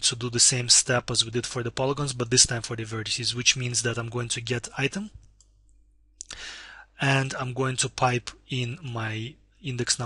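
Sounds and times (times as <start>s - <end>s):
person breathing in: 6.3s - 7.0s.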